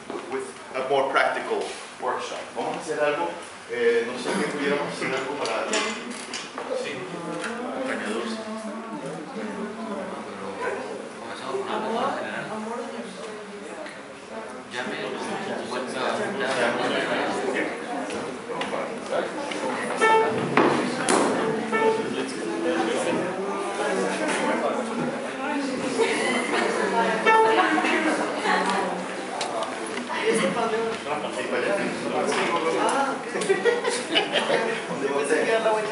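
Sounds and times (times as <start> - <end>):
murmured voices: 6.0 - 35.9
chairs scraping on wooden floor: 19.8 - 22.3
short pitched notes: 19.9 - 20.6.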